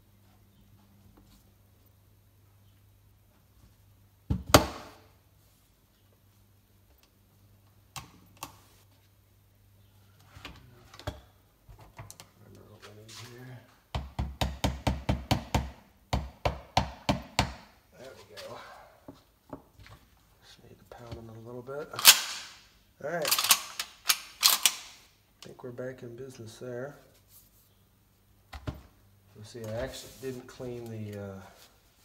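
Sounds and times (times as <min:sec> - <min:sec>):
metal clicks of shotgun parts: 0:22.0 - 0:22.6, 0:23.2 - 0:25.1.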